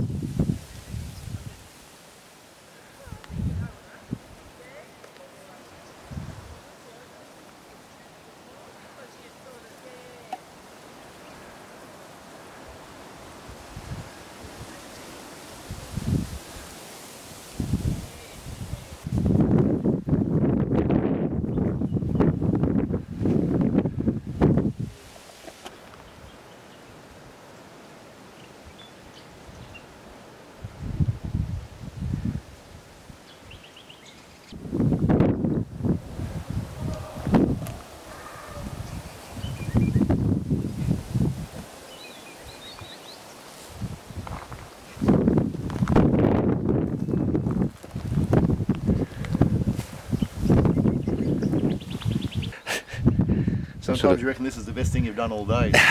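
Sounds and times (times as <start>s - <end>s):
wind buffeting microphone: 0.0s - 1.7s, 3.0s - 4.5s, 6.0s - 6.7s, 12.7s - 14.8s, 15.6s - 16.7s, 17.5s - 25.1s, 30.6s - 33.8s, 34.5s - 43.0s, 43.6s - 55.9s
leaves rustling: 0.0s - 55.9s.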